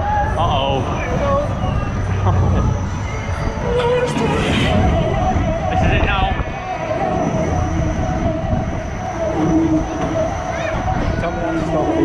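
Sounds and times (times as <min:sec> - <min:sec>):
fairground ride mechanical rumble: 0:00.0 - 0:12.0
voices: 0:00.0 - 0:12.0.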